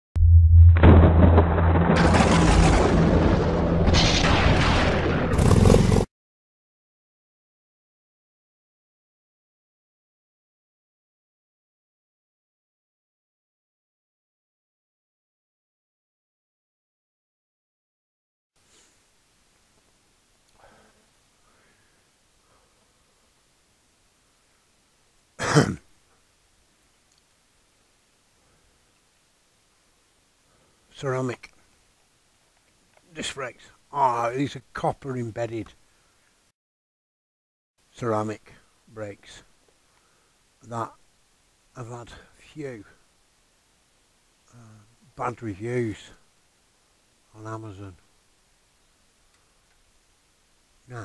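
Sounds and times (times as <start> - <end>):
low drone: 0.2 - 4.6
dense cinematic rumble: 0.2 - 5.9
man clearing his throat: 25.4 - 25.9.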